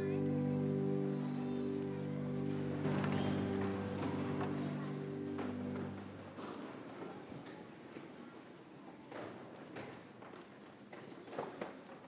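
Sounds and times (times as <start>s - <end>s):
held musical chord: 0.0s - 6.4s.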